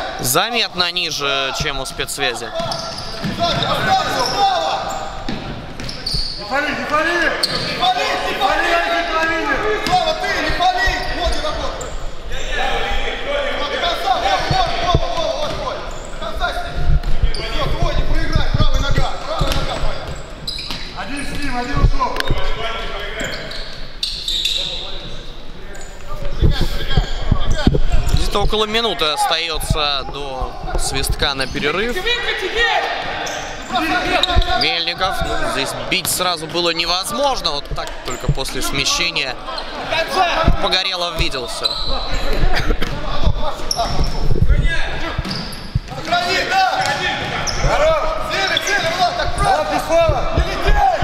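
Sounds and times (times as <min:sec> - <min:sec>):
voices calling out: 0:01.1 - 0:51.0.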